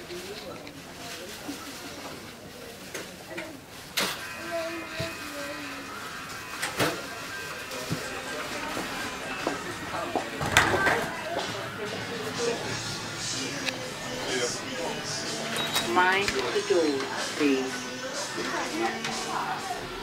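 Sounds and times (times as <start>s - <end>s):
distant voices: 0.2s - 20.0s
background music: 4.2s - 20.0s.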